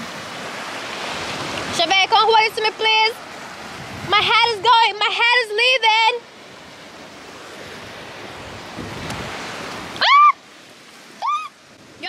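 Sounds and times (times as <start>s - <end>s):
surf: 0.0s - 12.0s
wind: 0.0s - 12.0s
woman's short rising cry: 10.0s - 10.4s, 11.2s - 11.6s.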